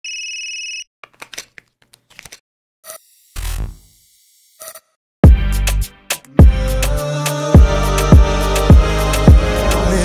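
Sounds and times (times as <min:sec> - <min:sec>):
telephone ringing: 0:00.0 - 0:00.9.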